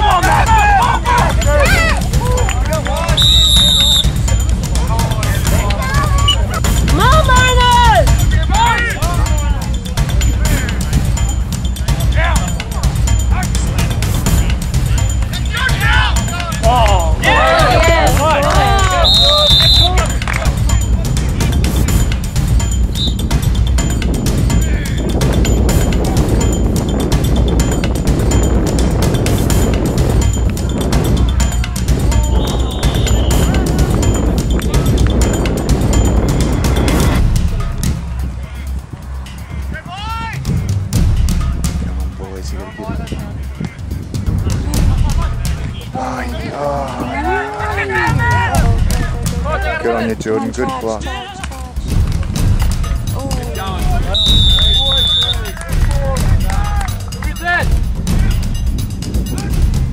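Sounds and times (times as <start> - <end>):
distant shouts: 15.4 - 20.2
wind rumbling on microphone: 19.9 - 49.3.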